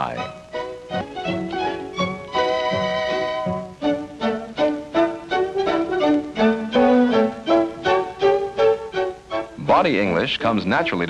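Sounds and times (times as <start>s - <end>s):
violin film music: 0.0s - 11.0s.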